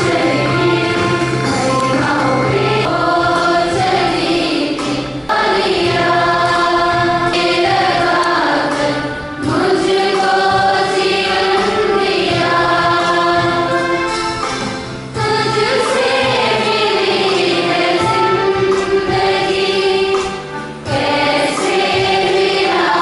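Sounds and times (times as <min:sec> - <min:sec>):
congregation singing a hymn: 0:00.0 - 0:23.0.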